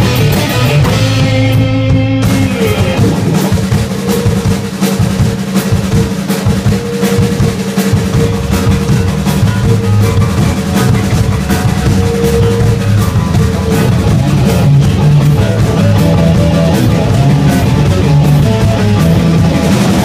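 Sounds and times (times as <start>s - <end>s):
bass notes: 0.0s - 20.0s
drum kit beat: 0.0s - 20.0s
electric guitar notes: 0.0s - 20.0s.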